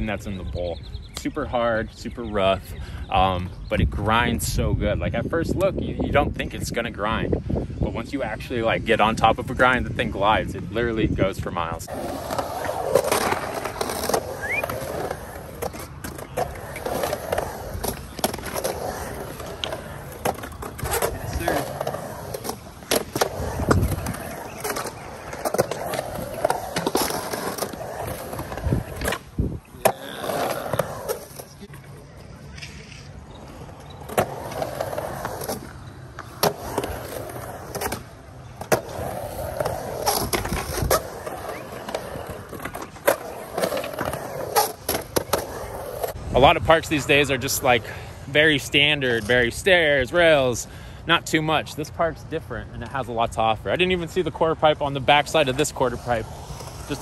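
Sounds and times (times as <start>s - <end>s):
skateboard wheels rolling on concrete: 0.0s - 57.0s.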